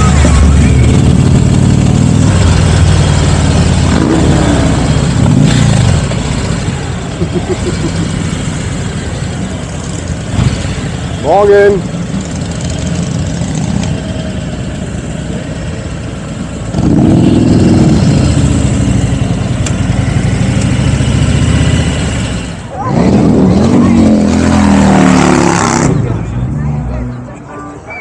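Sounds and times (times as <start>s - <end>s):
motorbike engine revving: 0.0s - 11.0s, 16.6s - 26.2s.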